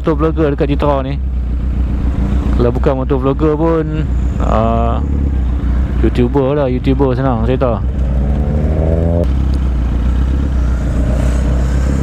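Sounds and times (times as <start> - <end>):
motorcycle engines idling: 0.0 - 12.0
motorcycle revving: 0.0 - 12.0.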